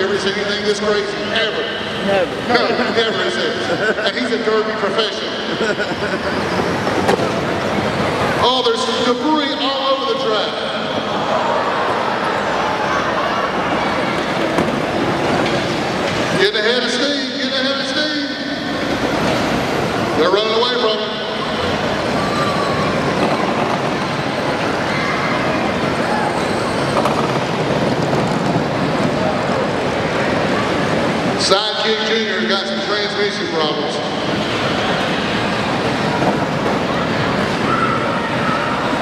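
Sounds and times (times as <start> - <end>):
echoing crowd noise: 0.0 - 39.0.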